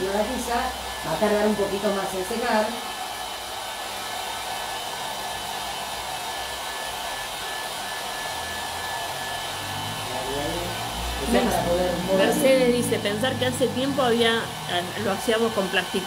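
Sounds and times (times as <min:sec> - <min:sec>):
hair dryer blowing: 0:00.0 - 0:16.0.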